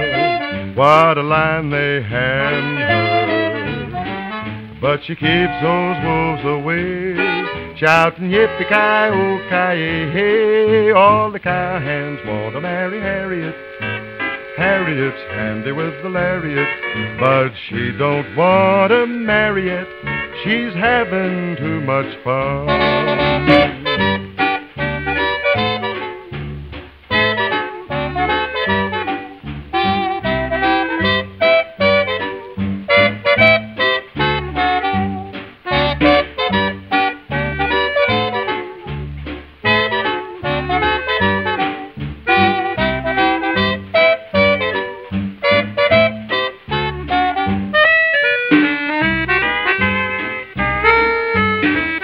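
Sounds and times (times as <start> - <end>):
wind instruments playing: 0.0 - 10.3, 11.7 - 52.0
steady bass beat: 22.4 - 47.8.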